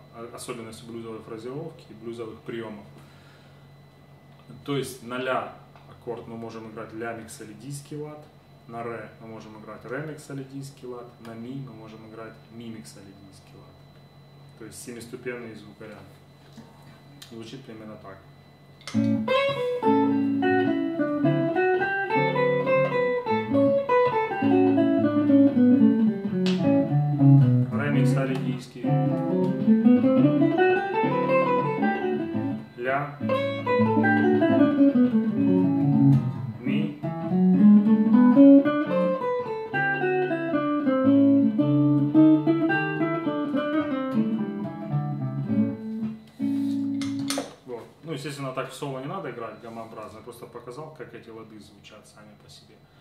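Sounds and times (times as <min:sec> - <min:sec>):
electric guitar scale runs: 0:18.4 - 0:47.1.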